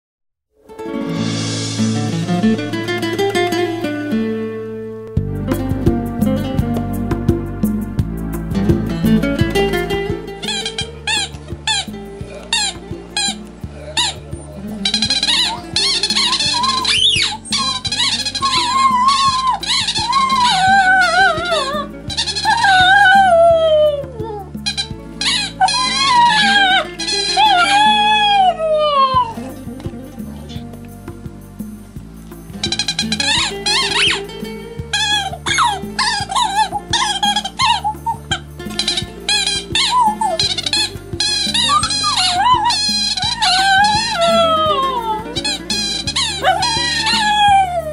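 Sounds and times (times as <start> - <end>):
guitar music: 0.6 - 47.9
dog whining cries: 10.4 - 29.6, 32.6 - 47.9.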